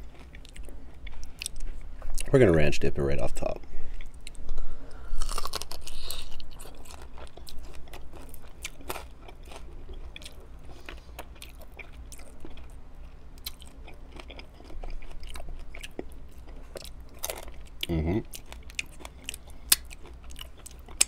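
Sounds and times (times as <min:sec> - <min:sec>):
crunchy biting and chewing: 0:05.1 - 0:21.0.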